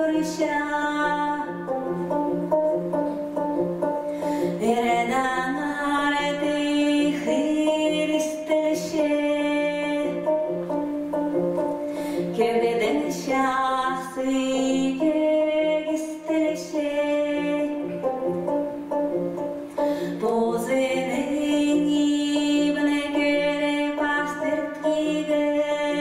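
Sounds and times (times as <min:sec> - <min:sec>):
woman singing: 0:00.0 - 0:02.6, 0:04.2 - 0:18.8, 0:19.8 - 0:26.0
plucked-string lute: 0:00.0 - 0:26.0.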